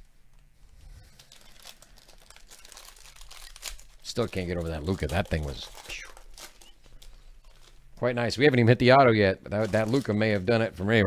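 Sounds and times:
foil wrapper crinkling: 0.7 - 11.0.

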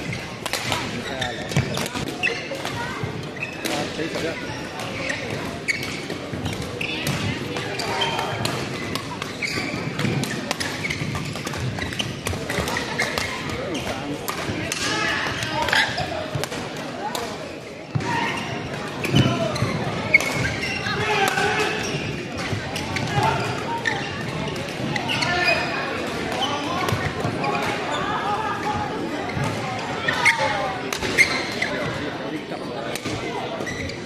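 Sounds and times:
voices of players: 0.0 - 34.0
rackets hitting shuttlecocks: 0.1 - 18.1.

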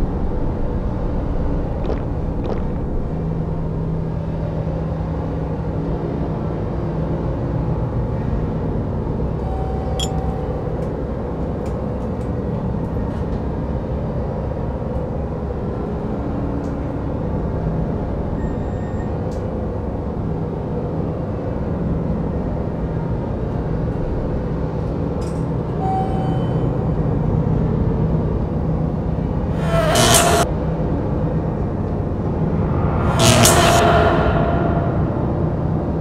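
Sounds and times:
steady low rumble: 0.0 - 9.4, 29.2 - 36.0.

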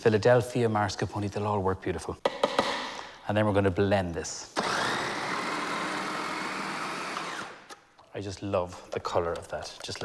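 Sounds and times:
food processor motor running: 4.6 - 7.6.

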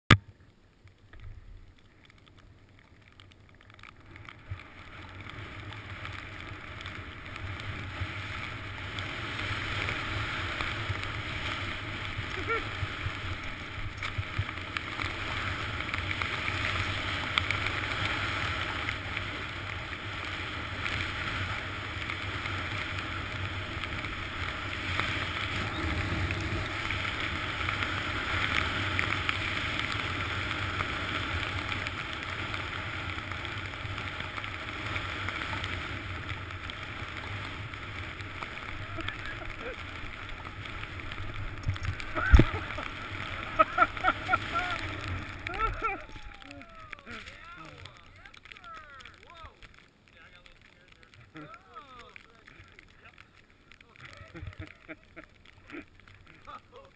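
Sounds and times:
small bumps: 0.1 - 56.9
skis scraping on snow: 2.8 - 56.9
wind rushing over camera: 3.8 - 51.4.

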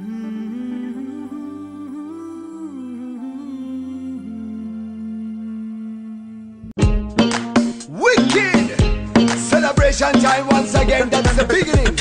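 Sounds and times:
soft sustained backing chords: 0.0 - 6.8.

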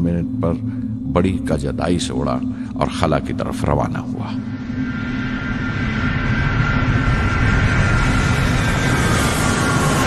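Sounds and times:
rocket engine roar: 0.0 - 10.0.

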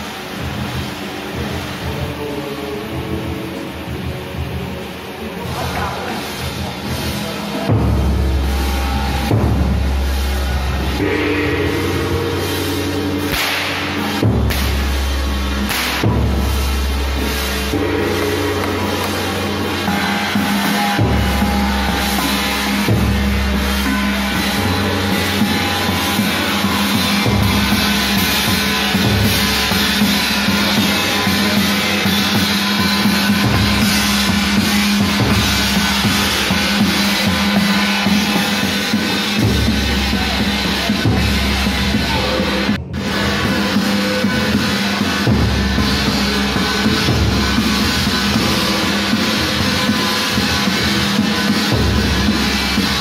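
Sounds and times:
gong beaten: 0.0 - 53.0
temple ritual music: 0.0 - 53.0
hand drum beating: 3.0 - 53.0.

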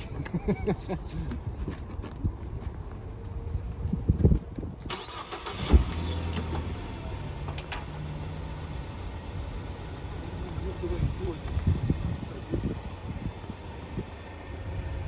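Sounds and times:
car engine idling: 4.9 - 15.0.

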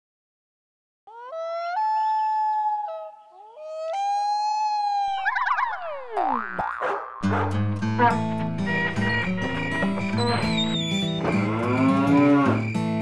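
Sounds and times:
falling whistles: 9.0 - 13.0.

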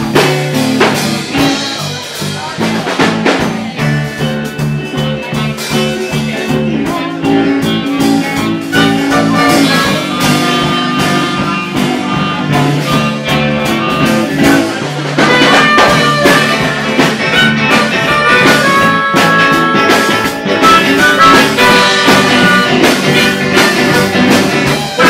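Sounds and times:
live blues-rock band playing: 0.0 - 25.0.

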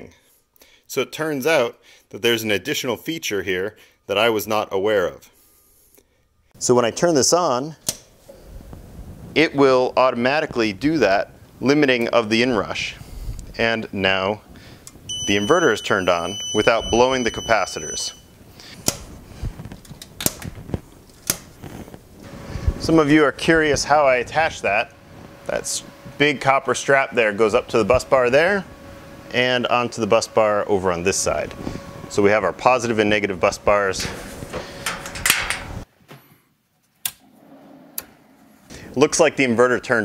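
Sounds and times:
switch clicks: 7.8 - 8.1
clattering handling noises: 34.0 - 36.3.

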